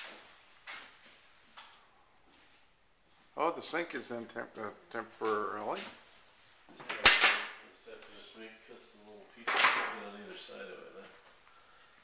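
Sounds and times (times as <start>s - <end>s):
footsteps on bare floor: 0.0s - 3.4s.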